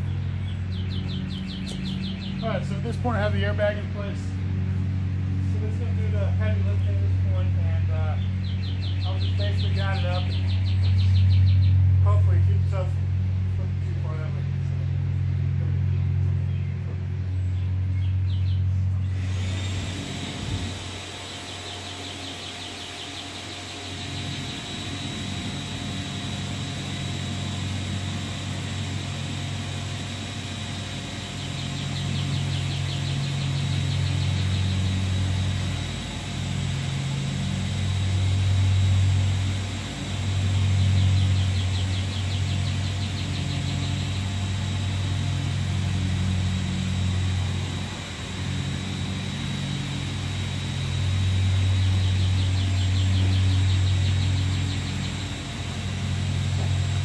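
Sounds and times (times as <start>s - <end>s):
motor humming: 0.0s - 57.0s.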